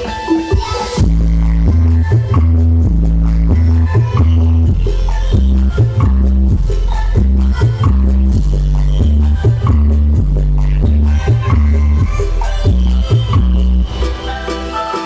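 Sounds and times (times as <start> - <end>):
deep heavy bass line: 0.0 - 14.0
electronic dance music: 0.0 - 15.0.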